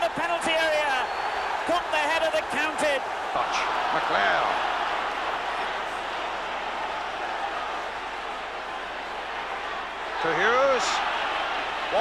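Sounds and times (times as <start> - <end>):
stadium crowd noise on television: 0.0 - 12.0.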